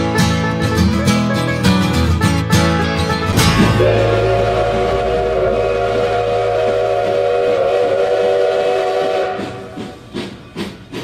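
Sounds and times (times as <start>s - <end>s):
low rumble: 3.2s - 8.4s
locomotive exhaust puffs: 3.3s - 11.0s
steam locomotive chime whistle: 3.4s - 10.7s.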